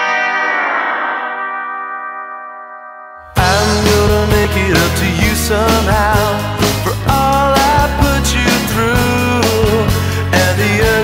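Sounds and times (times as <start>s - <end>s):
electric guitar chord ringing: 0.0s - 6.9s.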